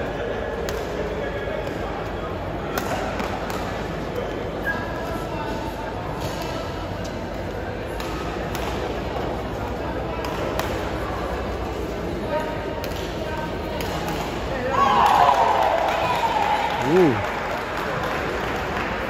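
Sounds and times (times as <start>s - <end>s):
murmur of crowd voices: 0.0s - 19.0s
racket striking shuttlecock: 7.9s - 9.0s.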